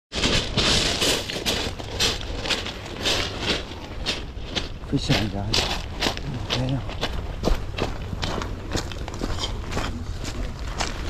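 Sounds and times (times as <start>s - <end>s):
crunching footsteps: 0.1s - 11.0s
steady low rumble: 0.2s - 11.0s.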